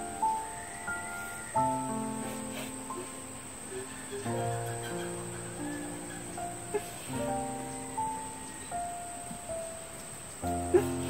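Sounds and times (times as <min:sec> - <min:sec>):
high-pitched insect drone: 0:00.0 - 0:09.8
slow background music: 0:00.0 - 0:11.0.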